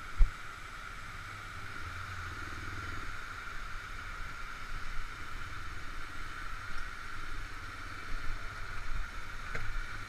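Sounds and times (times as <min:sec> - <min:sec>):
atv engine at low revs: 0:00.0 - 0:10.0
steady hiss: 0:00.0 - 0:10.0.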